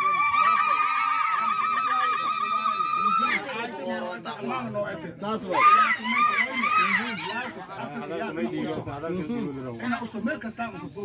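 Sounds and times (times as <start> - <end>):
woman ululating: 0.0 - 3.4
low voices of gathering: 0.0 - 11.0.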